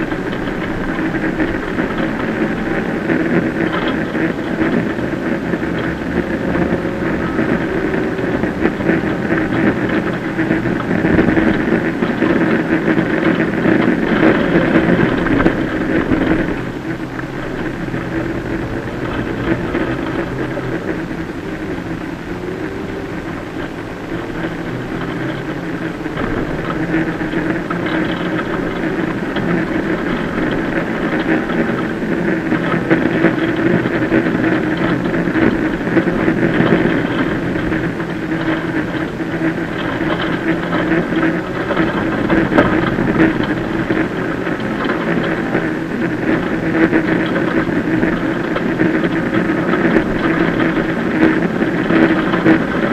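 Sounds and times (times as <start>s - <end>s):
rally car engine: 0.0s - 52.9s.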